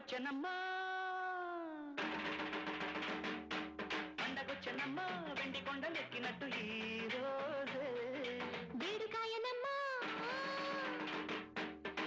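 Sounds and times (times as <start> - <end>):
woman singing: 0.0 - 2.0, 4.2 - 11.3.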